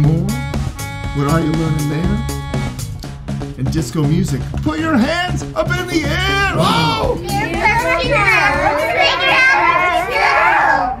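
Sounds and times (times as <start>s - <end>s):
children shouting together: 6.6s - 11.0s.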